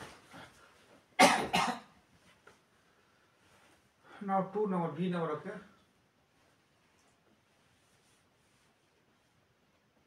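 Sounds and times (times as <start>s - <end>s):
man coughing: 1.2s - 1.9s.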